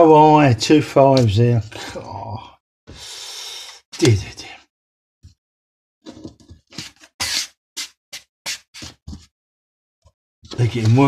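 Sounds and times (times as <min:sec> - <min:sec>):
scratchcard scratching: 0:06.8 - 0:09.0.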